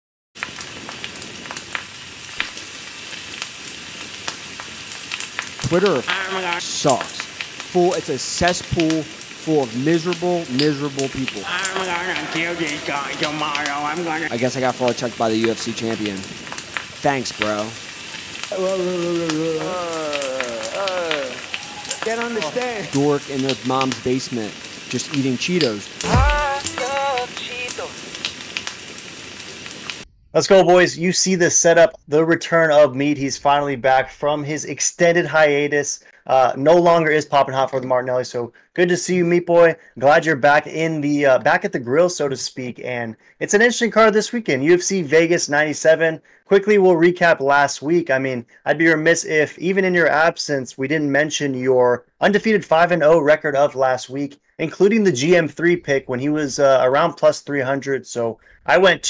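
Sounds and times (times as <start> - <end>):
steak sizzling on a grill: 0.4 - 30.0.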